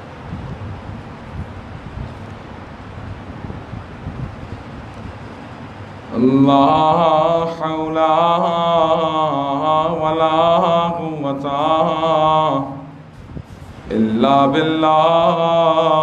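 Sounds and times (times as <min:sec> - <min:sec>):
man chanting through microphone: 0:06.1 - 0:13.2, 0:13.8 - 0:16.0.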